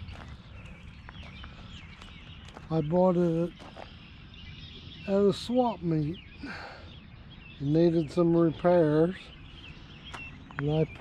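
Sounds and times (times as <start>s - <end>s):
footsteps crunching on gravel: 0.0s - 4.3s, 9.1s - 11.0s
small birds chirping: 0.0s - 11.0s.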